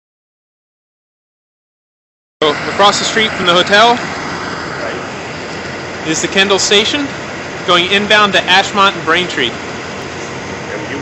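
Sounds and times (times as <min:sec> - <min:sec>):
bus driving past: 0:02.4 - 0:11.0
street traffic noise: 0:02.4 - 0:11.0.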